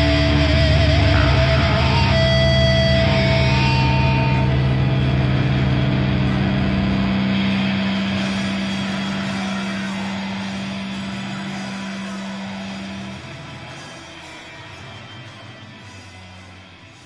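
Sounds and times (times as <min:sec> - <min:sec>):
distorted guitar and bass drone: 0:00.0 - 0:17.0.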